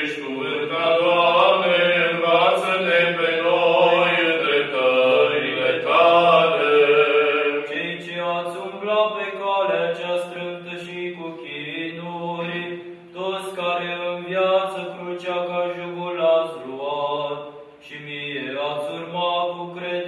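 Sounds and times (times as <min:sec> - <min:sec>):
unaccompanied liturgical chant: 0:00.0 - 0:20.0.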